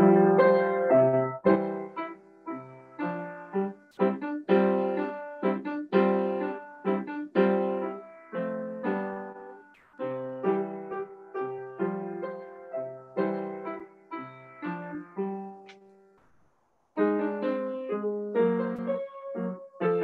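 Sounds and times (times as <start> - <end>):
piano chords and bass notes: 0.0 - 15.8.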